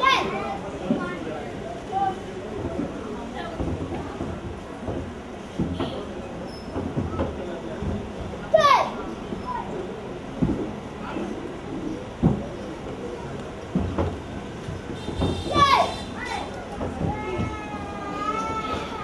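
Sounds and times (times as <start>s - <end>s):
children chattering: 0.0s - 19.0s.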